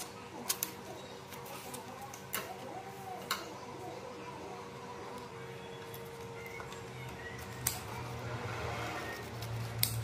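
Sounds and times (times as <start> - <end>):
scissors snipping leaf: 9.2 - 10.0.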